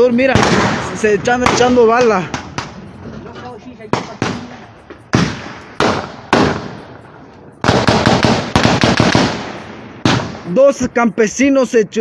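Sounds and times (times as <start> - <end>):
gunshots echoing: 0.0 - 3.1, 3.8 - 10.8
rapid gunfire volley: 0.2 - 2.8, 3.9 - 6.8, 7.6 - 10.6.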